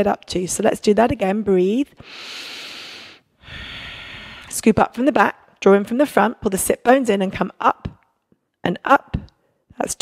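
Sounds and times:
woman breathing into microphone: 0:02.0 - 0:04.5.

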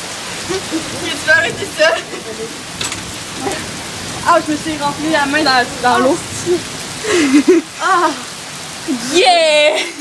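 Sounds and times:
heavy rain on pavement: 0:00.0 - 0:10.0.

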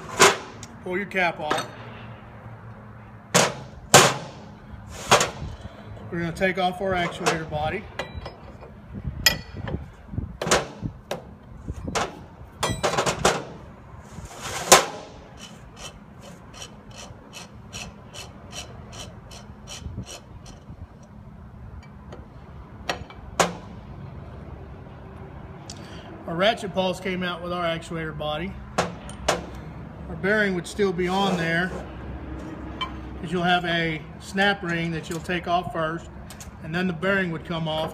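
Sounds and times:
metal wrench knocks and clanks: 0:07.1 - 0:09.8, 0:11.9 - 0:13.4.

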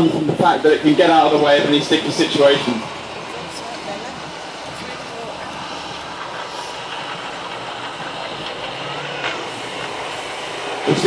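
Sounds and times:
diesel truck engine running: 0:00.0 - 0:11.0.

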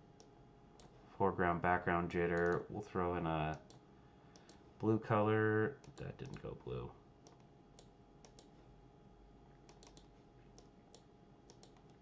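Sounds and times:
low room hum: 0:00.0 - 0:12.0
mouse and keyboard clicks: 0:09.7 - 0:10.7.

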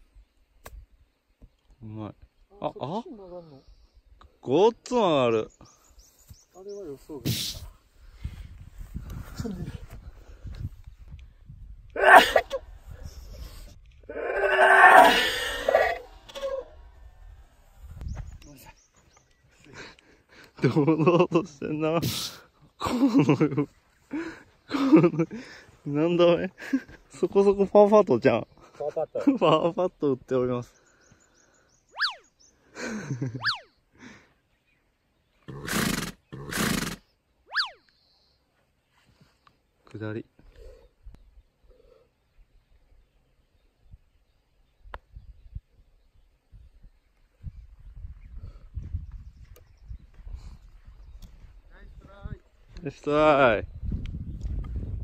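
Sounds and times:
man sneezing loudly: 0:07.2 - 0:07.7, 0:12.0 - 0:12.6.

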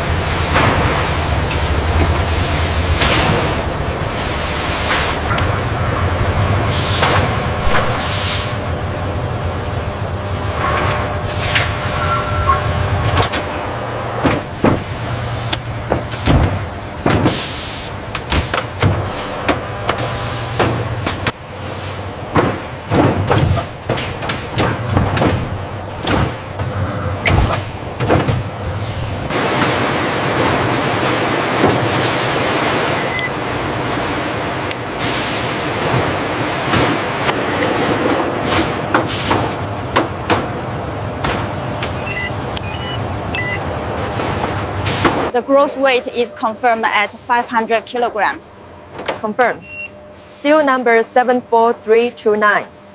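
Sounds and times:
machinery low hum: 0:00.0 - 0:52.9.

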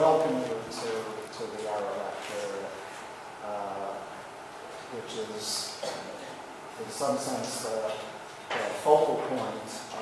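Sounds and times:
man speaking into a microphone: 0:00.0 - 0:04.2, 0:04.8 - 0:10.0.

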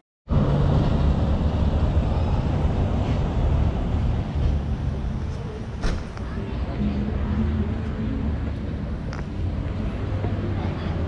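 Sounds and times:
street noise with low rumble: 0:00.3 - 0:11.0.

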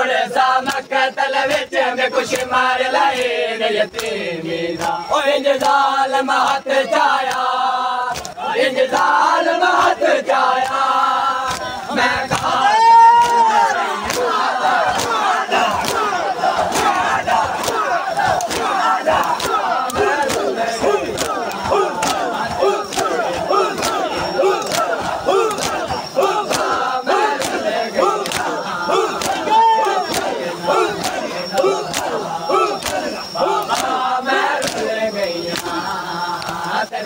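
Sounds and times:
crowd of men chanting: 0:00.0 - 0:37.0
hands slapping chests: 0:00.6 - 0:00.9, 0:04.8 - 0:05.0, 0:08.1 - 0:09.2, 0:10.6 - 0:34.0, 0:34.6 - 0:34.9, 0:36.4 - 0:36.7.

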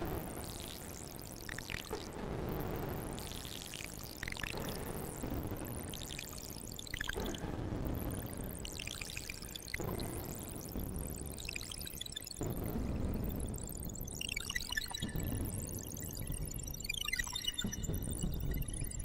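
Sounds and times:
bubbly synthesizer blips: 0:02.6 - 0:19.0.

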